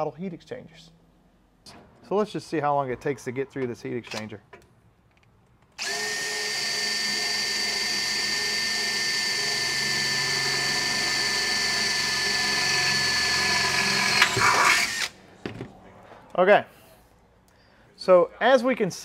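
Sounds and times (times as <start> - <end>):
drill grinding into metal tube: 5.8 - 15.2.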